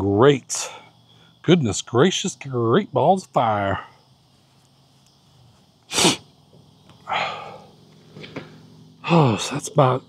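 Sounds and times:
man blowing his nose: 5.9 - 6.3.

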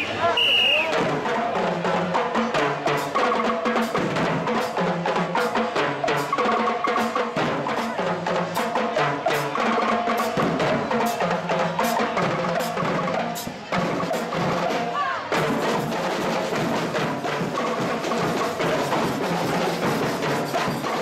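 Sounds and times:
marching drums playing: 0.8 - 21.0.

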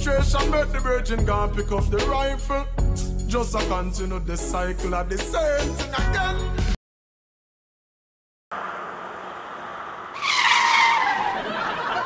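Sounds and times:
street noise: 8.5 - 12.0
vehicle squealing: 8.6 - 12.0.

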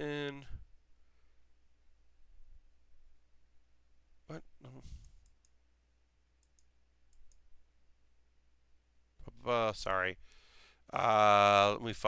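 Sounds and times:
computer mouse clicks: 5.0 - 5.6, 6.4 - 7.5.

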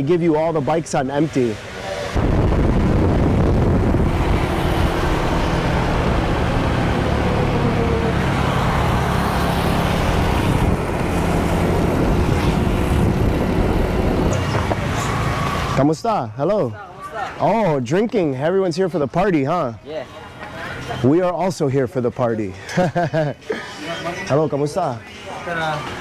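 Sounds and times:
wind and road noise on microphone: 0.0 - 15.9.

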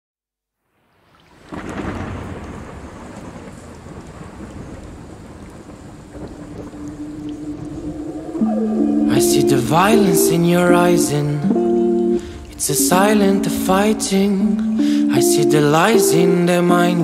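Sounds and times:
rain: 0.6 - 9.4
thunder rumbling: 1.4 - 14.7.

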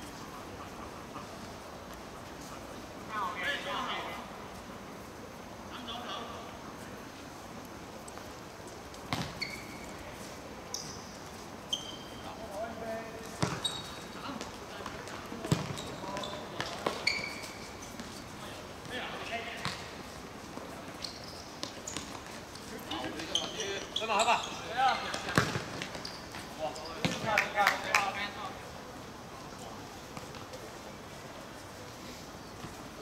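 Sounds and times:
ball kicked and bouncing: 9.1 - 9.6, 13.4 - 13.8, 14.8 - 17.1, 25.1 - 26.1
shoe squeaks on court: 9.1 - 10.0, 10.7 - 12.3, 13.4 - 14.2, 15.5 - 18.3, 20.9 - 22.2, 22.9 - 27.3.

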